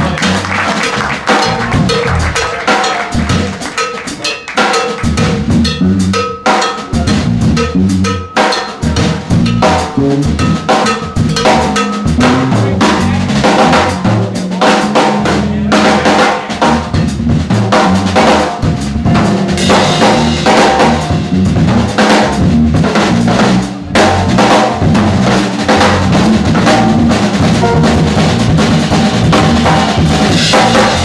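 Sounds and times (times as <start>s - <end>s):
drum kit rim and cymbal hits: 0.0s - 31.0s
jazz combo playing: 0.0s - 31.0s.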